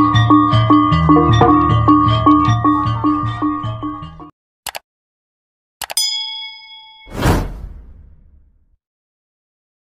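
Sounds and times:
notification bell ding: 5.9 - 7.2
whoosh with deep rumble: 7.1 - 8.7.

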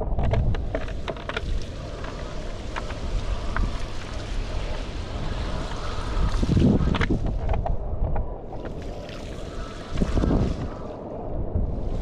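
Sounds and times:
wind buffeting microphone: 0.0 - 12.0
choppy water rushing: 0.6 - 7.5, 8.6 - 11.1.

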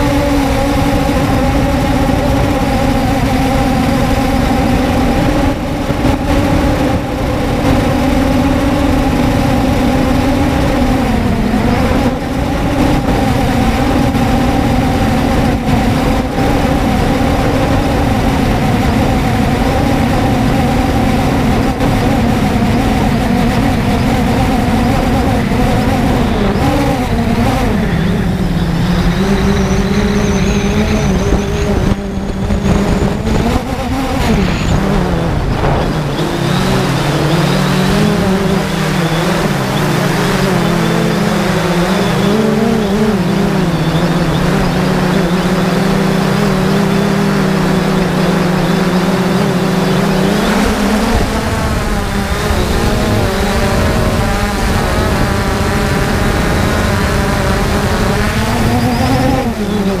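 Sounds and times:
drone propellers buzzing: 0.0 - 60.0.

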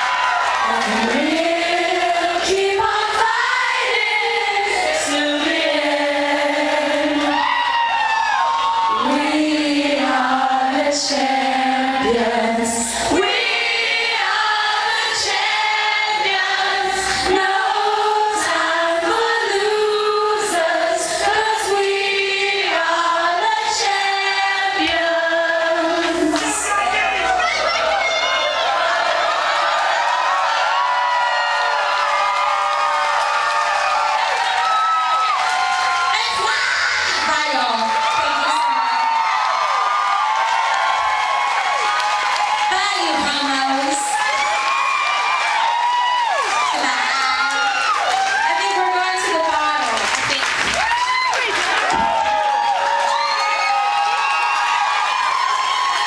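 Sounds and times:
crowd singing in unison: 0.0 - 7.6, 8.9 - 27.0
crowd cheering and whooping: 0.0 - 10.9, 26.0 - 56.0.

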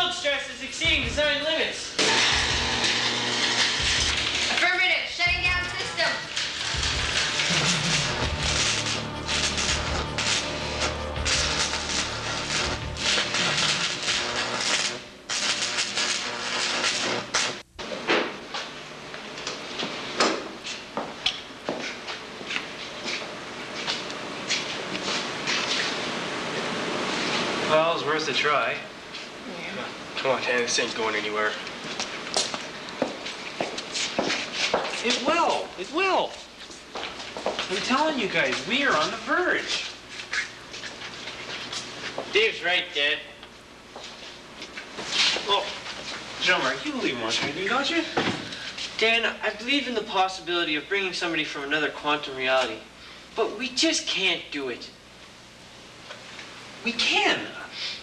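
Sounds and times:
crackling electrical discharge: 2.0 - 18.1, 34.4 - 36.4, 37.6 - 43.1
footsteps and shuffling: 18.3 - 26.0, 31.7 - 35.3, 36.2 - 37.8, 38.4 - 42.4, 43.9 - 46.3.

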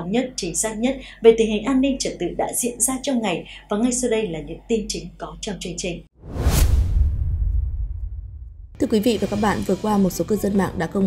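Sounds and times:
whoosh: 6.2 - 8.8
deep rumble: 6.2 - 9.8.

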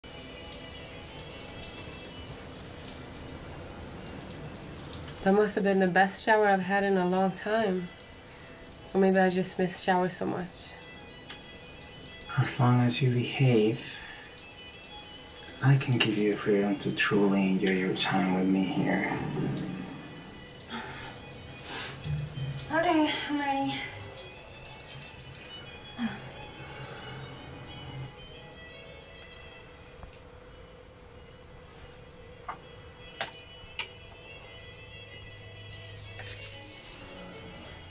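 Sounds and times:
soft film music: 0.0 - 37.9
low hiss of ambience: 0.1 - 37.8
quiet breathing: 13.8 - 14.4, 26.0 - 28.0.

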